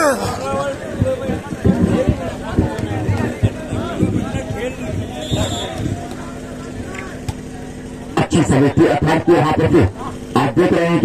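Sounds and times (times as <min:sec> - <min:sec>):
faint crowd murmur: 0:00.0 - 0:11.0.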